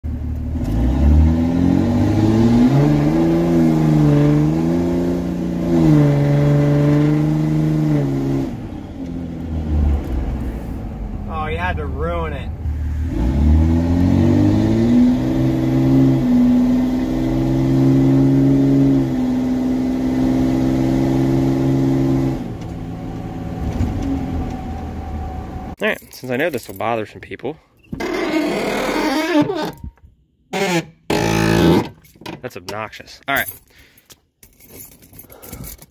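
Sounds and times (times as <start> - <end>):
diesel engine while driving: 0.1 - 25.8.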